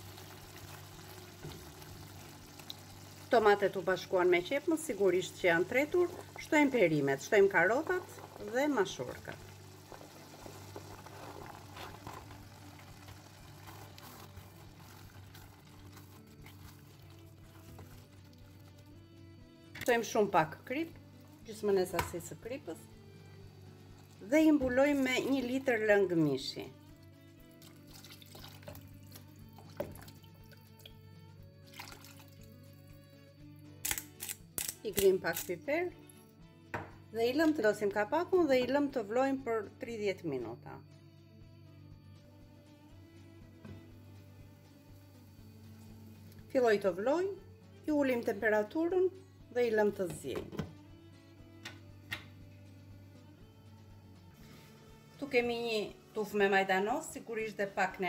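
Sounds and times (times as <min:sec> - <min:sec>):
background music: 0:00.0 - 0:58.0
liquid pouring into pan: 0:05.7 - 0:19.0, 0:27.6 - 0:31.0, 0:31.6 - 0:32.6
pepper mill grinding: 0:09.8 - 0:18.8, 0:33.8 - 0:35.6.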